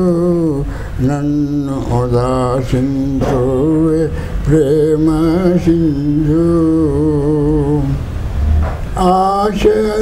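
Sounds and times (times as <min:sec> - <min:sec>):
elderly man singing: 0:00.0 - 0:08.1, 0:08.9 - 0:10.0.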